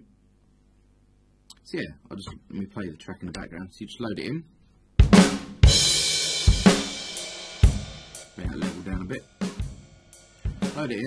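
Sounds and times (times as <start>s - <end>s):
drum hits: 5.0s - 11.0s.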